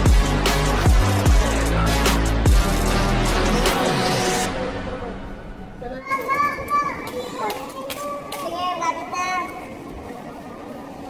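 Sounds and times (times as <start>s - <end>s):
child calling out: 5.9s - 9.7s.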